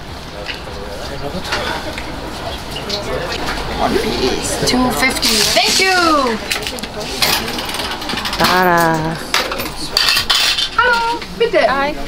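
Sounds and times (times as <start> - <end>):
cutlery and dishes clinking: 6.4 - 11.1.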